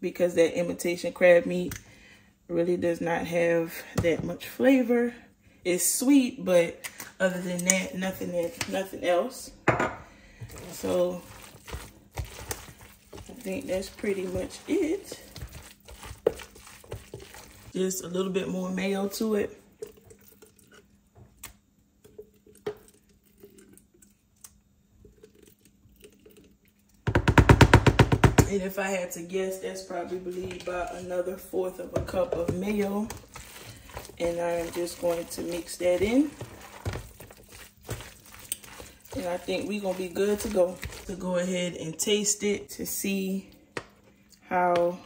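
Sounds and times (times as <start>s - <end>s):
spoon scraping plastic container: 10.4s - 18.0s, 30.2s - 41.5s
knock on plastic: 27.1s - 28.5s.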